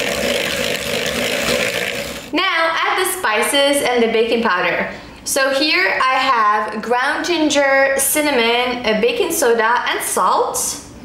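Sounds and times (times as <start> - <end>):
electric hand mixer running: 0.0 - 2.3.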